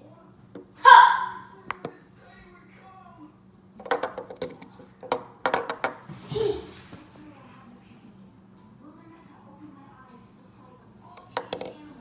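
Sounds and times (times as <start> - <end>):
plastic toy knocking on tabletop: 3.8 - 6.0, 11.3 - 11.8.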